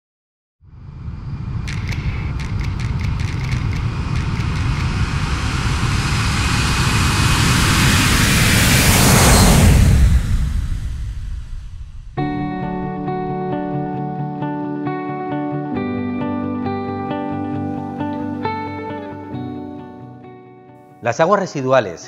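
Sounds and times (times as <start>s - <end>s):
deep rumble: 0.6s - 14.2s
hissing whoosh: 0.8s - 13.4s
run of sharp clicks: 1.7s - 5.1s.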